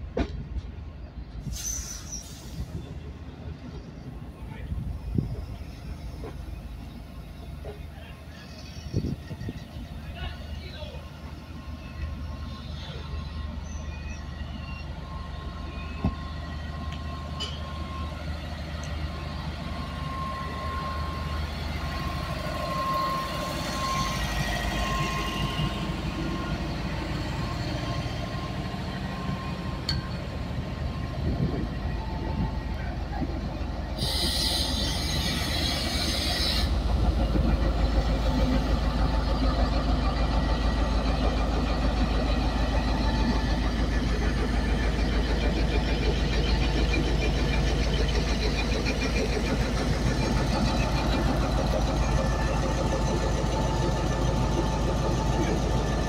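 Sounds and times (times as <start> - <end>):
diesel locomotive engine rumble: 0.0 - 56.0
train rolling past: 0.0 - 56.0
high wheel-on-rail tone: 1.0 - 56.0
hiss: 1.4 - 2.8, 34.0 - 36.8.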